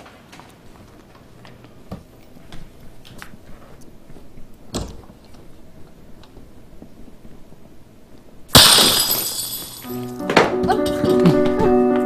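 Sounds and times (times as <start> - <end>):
glass bottle smashing: 8.5 - 10.2
glass ringing and tinkling: 8.6 - 10.1.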